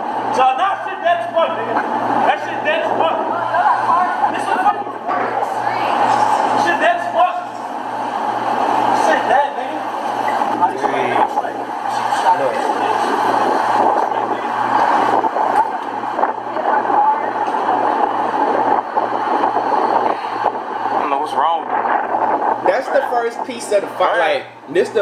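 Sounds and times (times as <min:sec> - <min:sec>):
passing traffic: 0:00.0 - 0:24.7
indistinct voices: 0:00.0 - 0:25.0.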